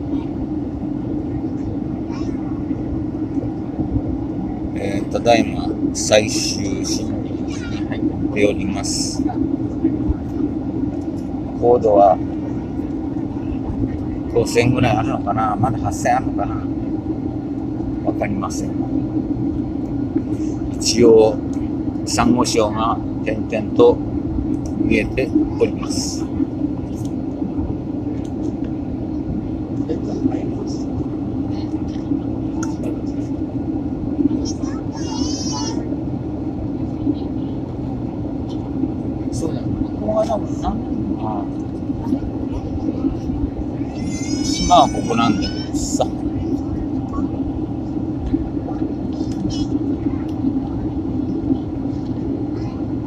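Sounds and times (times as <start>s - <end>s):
airliner cabin engine drone: 0.0s - 53.0s.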